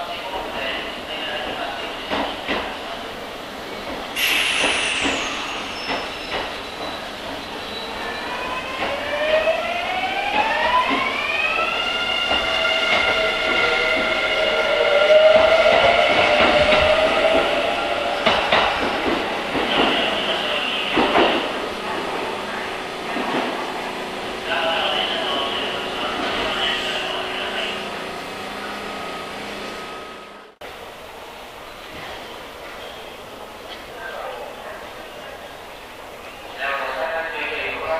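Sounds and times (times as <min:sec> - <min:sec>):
train wheels clicking and knocking: 0:02.1 - 0:02.8, 0:03.9 - 0:07.4, 0:18.2 - 0:20.1, 0:20.9 - 0:21.6.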